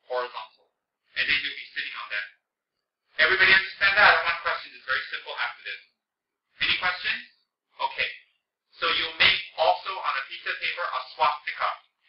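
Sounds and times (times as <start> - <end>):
man speaking: 0.0 - 2.4, 3.1 - 11.9.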